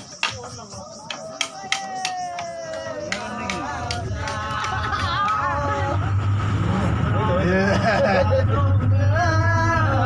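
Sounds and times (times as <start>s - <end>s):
passengers' voices: 0.0s - 10.0s
bus engine and road drone: 3.3s - 10.0s.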